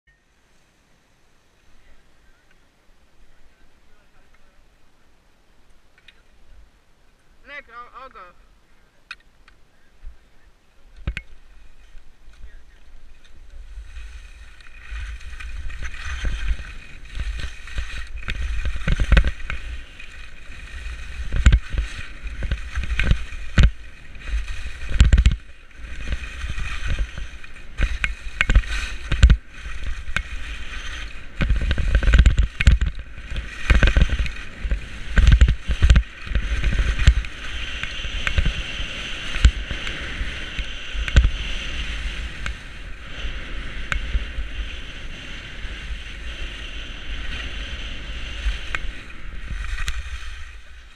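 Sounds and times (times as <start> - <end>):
skis scraping over snow: 9.8 - 50.9
wind buffeting microphone: 10.9 - 50.9.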